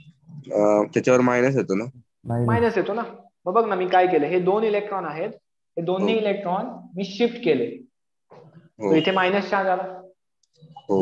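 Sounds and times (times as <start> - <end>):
man lecturing: 0.4 - 2.0, 8.8 - 9.0.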